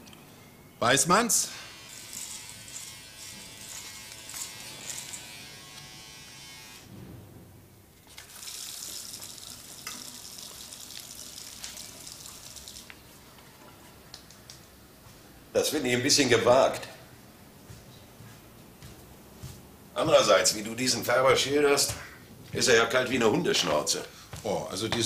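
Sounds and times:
electric razor buzzing: 1.5 - 6.9
water running from tap: 8.1 - 13.2.

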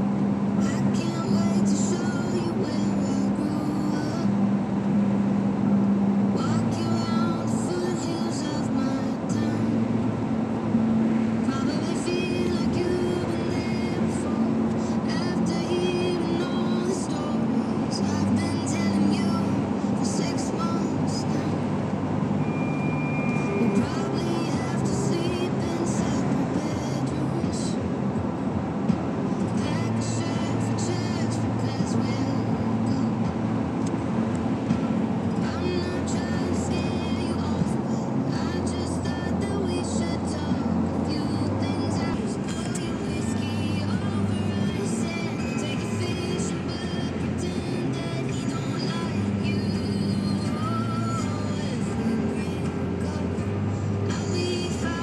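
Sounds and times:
car radio playing a song: 0.0 - 55.0
road and engine noise: 0.0 - 55.0.

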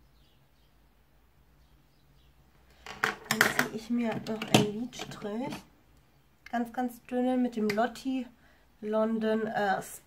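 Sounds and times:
cosmetics clicking on hard surface: 2.8 - 5.6.

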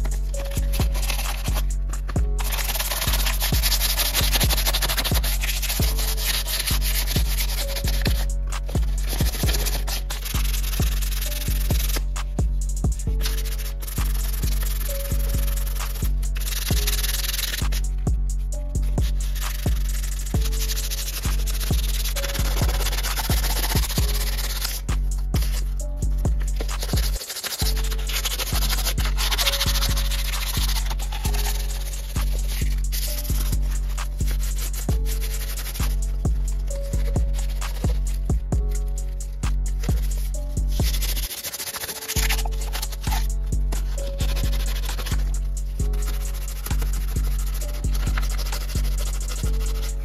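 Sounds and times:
background music with steady beat: 0.0 - 50.0
hand sanding sheet metal: 0.0 - 50.0.

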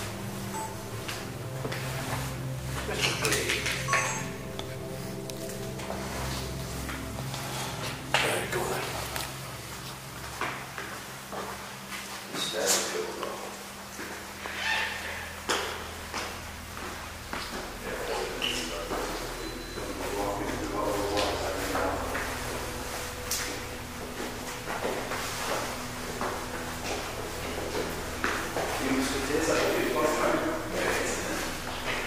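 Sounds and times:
low hum: 0.0 - 12.2, 13.2 - 32.0
low indistinct voices: 12.3 - 32.0.

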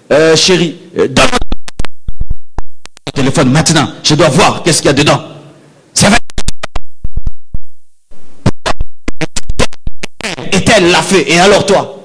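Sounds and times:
rapid sharp taps: 1.3 - 3.2, 6.2 - 10.3.

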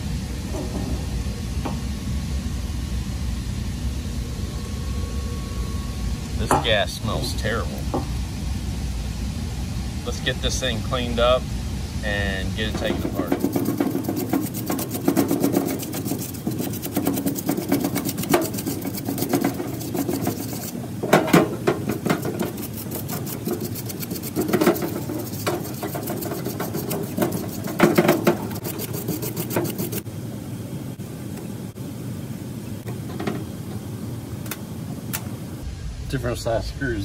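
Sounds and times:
brush scrubbing metal: 12.2 - 30.1.

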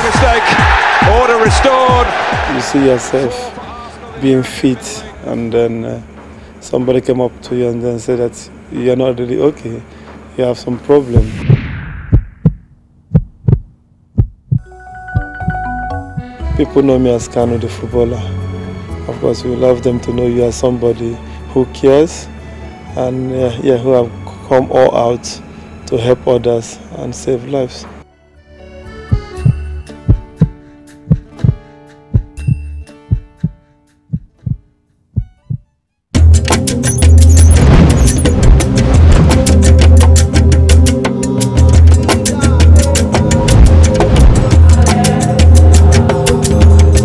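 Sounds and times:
heartbeat thumps: 11.2 - 15.6, 29.1 - 35.7, 43.5 - 44.8
music with held notes: 14.6 - 21.6, 28.0 - 34.1, 36.2 - 47.0.

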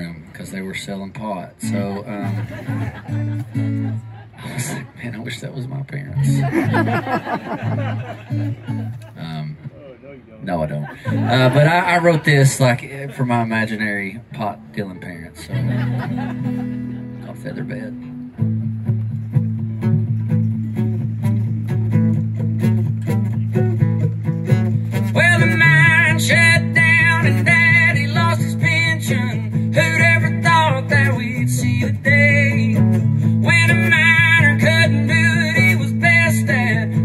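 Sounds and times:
strummed acoustic guitar: 0.7 - 9.2, 11.0 - 37.0
low bass line: 15.7 - 37.0.

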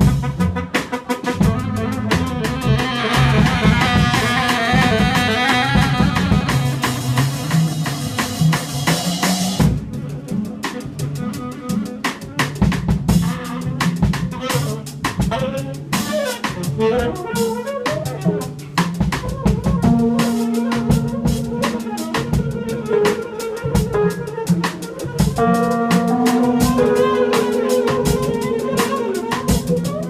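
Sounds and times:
saxophone: 0.0 - 8.6, 10.5 - 30.0
busy jazz drums: 0.0 - 30.0
walking bass line: 1.4 - 8.7, 19.4 - 24.3, 25.2 - 30.0.

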